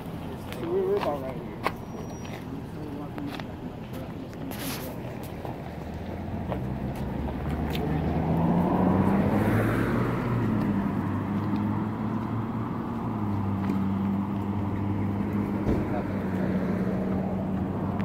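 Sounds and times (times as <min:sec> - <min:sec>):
car engine humming: 0:00.0 - 0:18.0.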